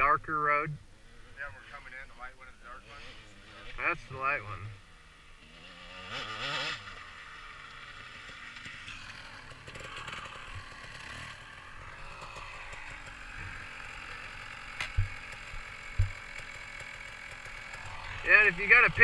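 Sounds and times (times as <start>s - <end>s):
distant dirt bike engines idling: 0.0s - 19.0s
low thumps on microphone: 15.9s - 16.2s.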